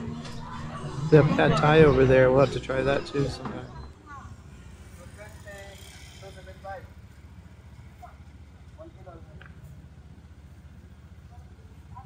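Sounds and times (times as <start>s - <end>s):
steady low rumble: 0.0s - 4.0s
faint voices talking: 0.0s - 12.0s.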